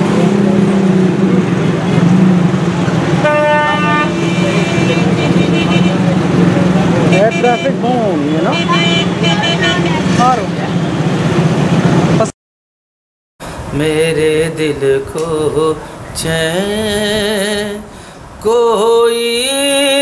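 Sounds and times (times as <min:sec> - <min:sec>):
traffic engine hum: 0:00.0 - 0:12.3, 0:13.4 - 0:20.0
vehicle horns honking: 0:03.1 - 0:11.1.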